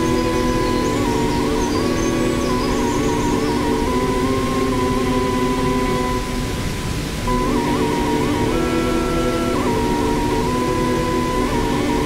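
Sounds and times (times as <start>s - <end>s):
waterfall rushing: 0.0s - 12.0s
electronic synthesizer music: 7.3s - 12.0s.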